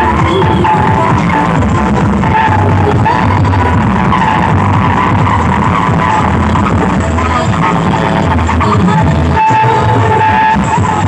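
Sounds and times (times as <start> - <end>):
wavering high synth line: 0.0 - 7.9
heavy repeating bass: 0.0 - 11.0
loud dance music: 0.0 - 11.0.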